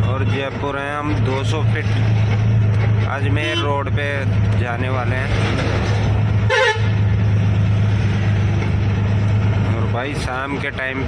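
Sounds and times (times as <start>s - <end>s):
truck engine running: 0.0s - 11.0s
vehicle horn toot: 6.5s - 6.9s.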